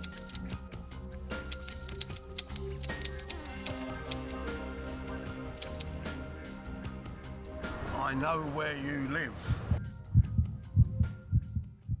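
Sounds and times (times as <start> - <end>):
heartbeat thumps: 9.5 - 12.0.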